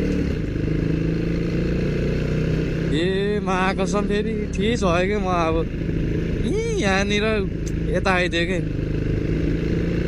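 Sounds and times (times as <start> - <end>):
dirt bike engine running: 0.0 - 10.0
man talking: 2.9 - 5.7, 6.4 - 8.7.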